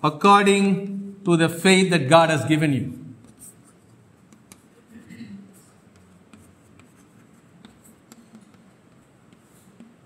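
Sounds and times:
chalk tapping and scratching: 3.2s - 10.0s.

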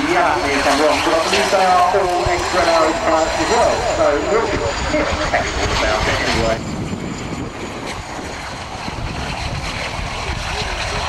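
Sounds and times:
faint high jet whine: 0.0s - 11.0s
jet rumble and rush: 0.0s - 11.0s
wind buffeting microphone: 0.0s - 11.0s.

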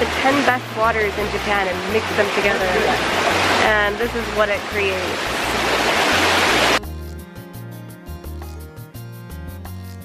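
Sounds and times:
stream rushing: 0.0s - 6.8s
soft instrumental music: 0.0s - 10.0s.

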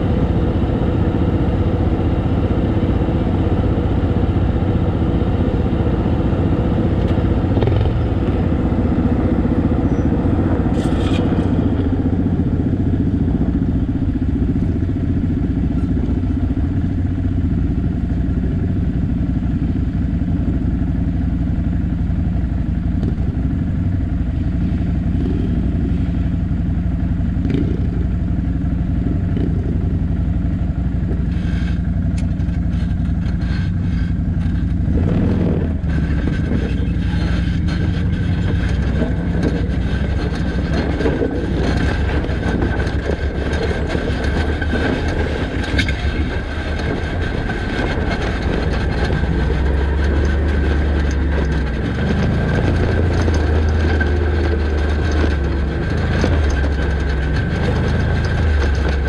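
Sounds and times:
atv engine idling and revving: 0.0s - 59.0s
clatter and knocks over rocky ground: 6.8s - 16.3s, 31.0s - 59.0s.

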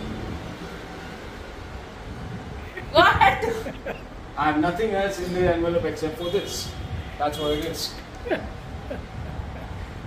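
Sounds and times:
room background rumble and hiss: 0.0s - 10.0s.

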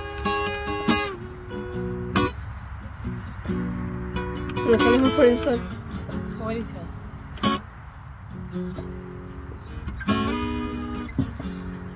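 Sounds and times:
acoustic guitar notes and chord: 0.0s - 11.9s.

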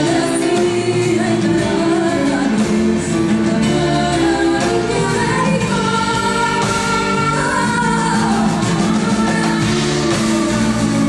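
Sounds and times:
grand piano: 0.0s - 11.0s.

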